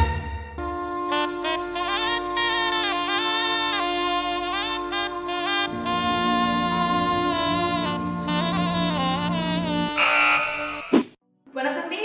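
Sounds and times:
wrong answer buzzer: 9.9 - 10.9.

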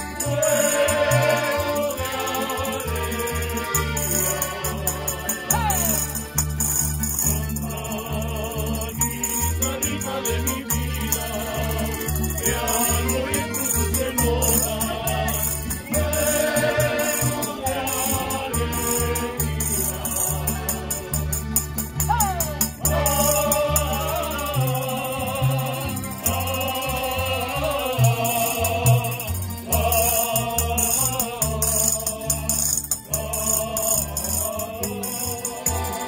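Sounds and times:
double bass: 0.0 - 36.0
group singing together: 0.0 - 36.0
strummed guitars and mandolins: 0.0 - 36.0
tambourine jingling: 0.0 - 36.0.

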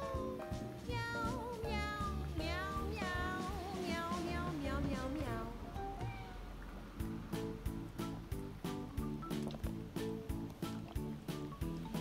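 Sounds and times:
background music with steady beat: 0.0 - 6.2, 6.9 - 12.0.

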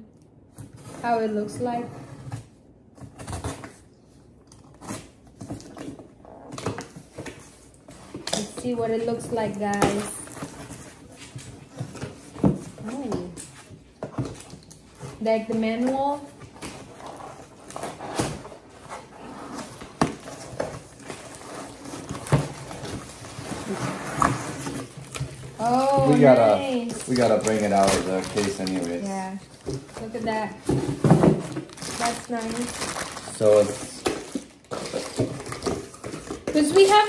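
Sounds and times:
cardboard packaging rustling: 4.6 - 37.0.

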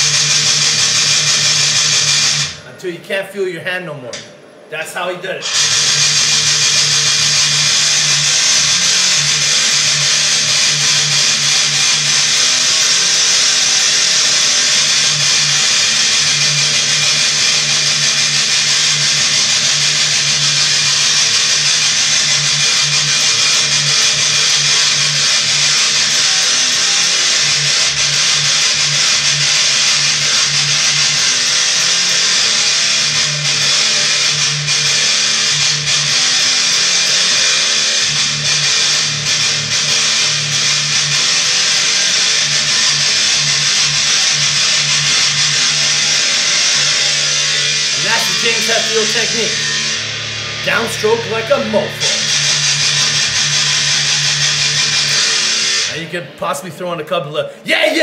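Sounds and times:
distorted electric guitar riff: 0.0 - 3.1, 4.1 - 58.0.

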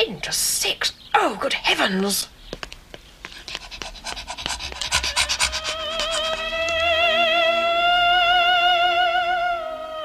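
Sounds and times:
rapid panting: 3.1 - 6.9.

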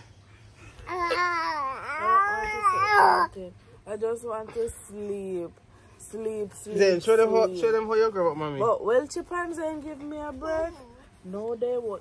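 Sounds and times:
baby whining: 0.7 - 3.5.

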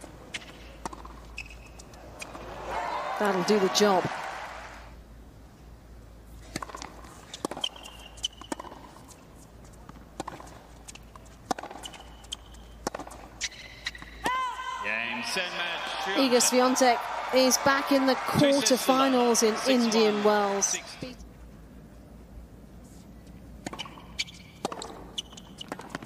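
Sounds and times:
tennis ball bounces: 0.3 - 2.5, 6.5 - 14.3, 23.6 - 26.0
crowd cheering: 2.0 - 5.0, 14.2 - 21.1
tennis racket strikes: 6.5 - 9.2, 9.9 - 13.3.

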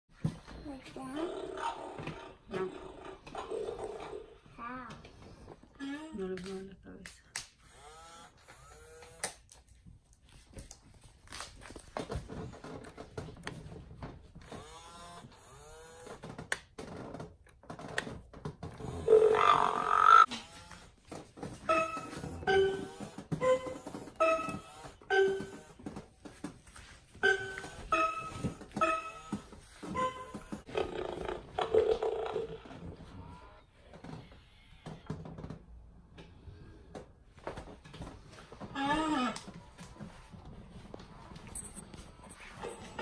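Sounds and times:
toy dinosaur roar from speaker: 18.8 - 20.3.

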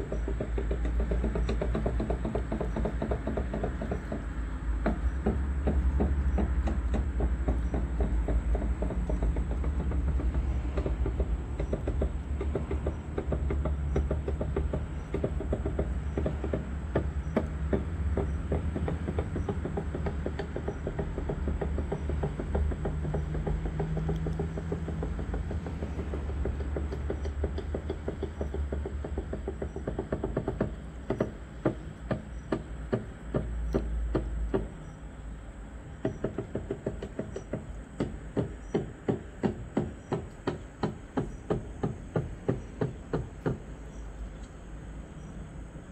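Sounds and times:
boat engine knocking rumble: 0.0 - 45.9.

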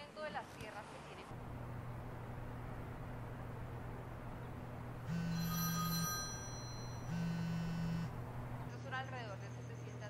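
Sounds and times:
telephone ringing: 5.0 - 8.1.

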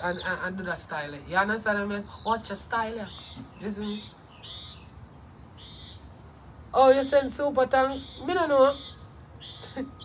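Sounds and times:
bird calling: 2.0 - 6.2, 7.7 - 10.0.

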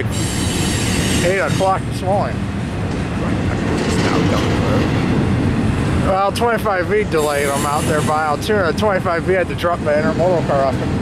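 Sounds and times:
train wheels on rails: 0.0 - 11.0.

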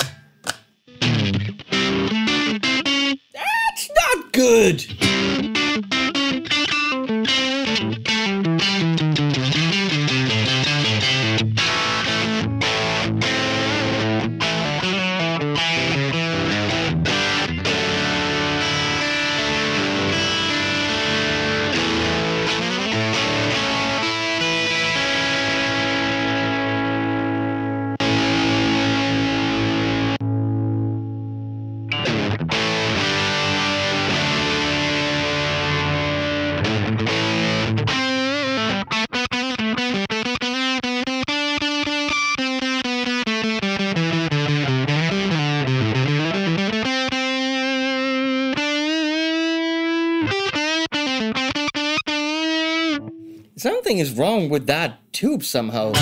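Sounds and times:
distorted electric guitar: 4.8 - 53.5.

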